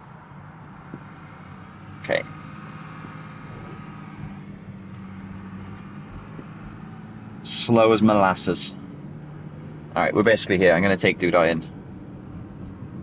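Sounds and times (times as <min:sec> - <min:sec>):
car engine hum: 0:00.0 - 0:13.0
road noise inside car: 0:00.0 - 0:13.0.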